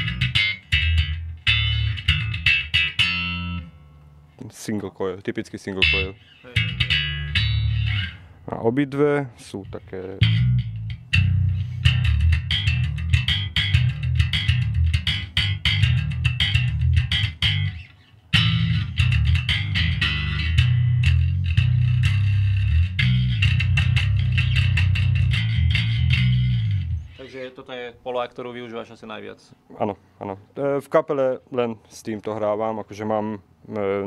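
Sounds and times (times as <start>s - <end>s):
electric bass riff: 0.0s - 4.4s, 5.7s - 8.6s, 9.4s - 27.3s.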